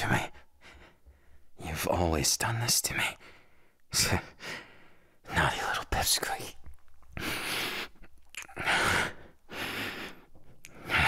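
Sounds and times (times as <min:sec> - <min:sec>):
man speaking: 0:00.0 - 0:00.4, 0:05.3 - 0:06.6.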